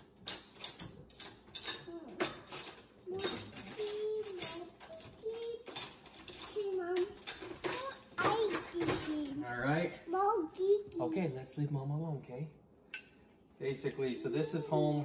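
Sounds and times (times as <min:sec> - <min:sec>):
cutlery clinking on dishes: 0:00.0 - 0:09.4.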